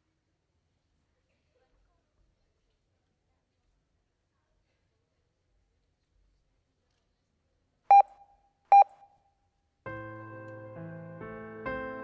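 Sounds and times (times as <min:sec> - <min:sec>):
short electronic beeps: 0:07.9 - 0:09.2.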